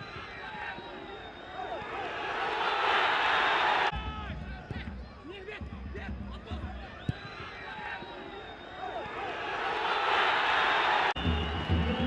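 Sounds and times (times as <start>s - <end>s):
stadium crowd roaring: 0.0s - 12.0s.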